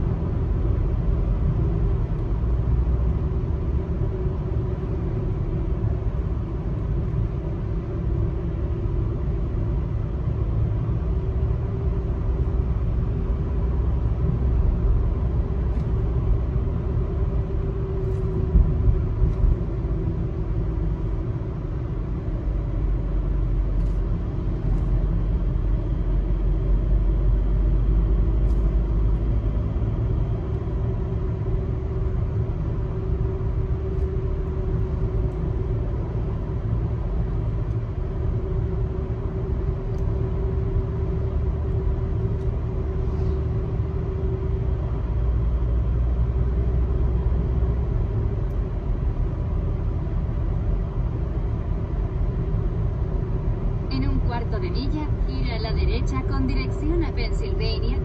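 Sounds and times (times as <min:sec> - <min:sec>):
car cabin road rumble: 0:00.0 - 0:58.0.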